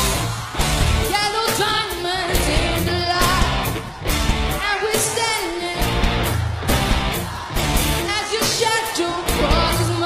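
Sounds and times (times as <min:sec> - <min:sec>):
pop-rock band playing: 0:00.0 - 0:10.0
steady drum beat: 0:00.0 - 0:10.0
woman singing into a microphone: 0:01.1 - 0:03.6, 0:04.6 - 0:06.0, 0:08.0 - 0:10.0.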